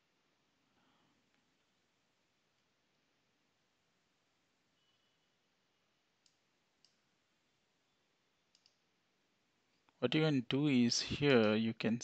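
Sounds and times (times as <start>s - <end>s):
computer mouse clicks: 6.2s - 7.1s, 8.5s - 8.9s.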